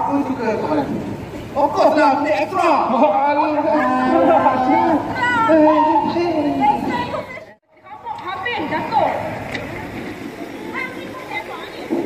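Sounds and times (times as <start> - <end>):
people talking: 1.6 - 12.0.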